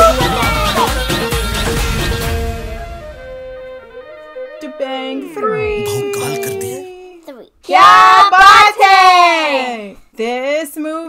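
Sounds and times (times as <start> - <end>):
woman and children singing: 5.4 - 6.9.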